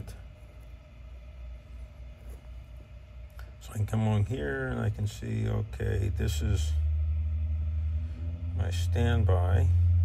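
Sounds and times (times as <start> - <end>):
faint steady hum: 0.0 - 10.0
low background rumble: 0.0 - 10.0.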